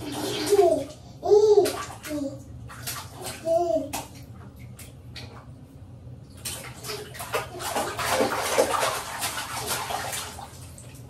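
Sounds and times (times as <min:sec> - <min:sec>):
water splashing in a bathtub: 0:00.0 - 0:11.0.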